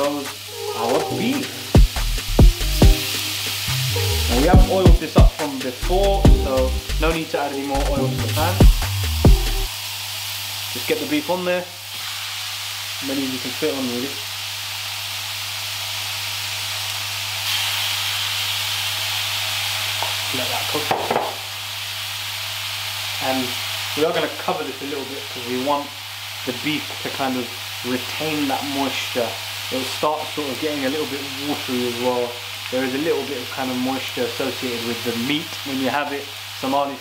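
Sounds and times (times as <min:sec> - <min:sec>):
meat sizzling in a wok: 0:00.0 - 0:37.0
background music: 0:00.5 - 0:09.7
deep downward-sweeping bass kicks: 0:01.8 - 0:03.0, 0:03.7 - 0:07.1, 0:07.8 - 0:09.7.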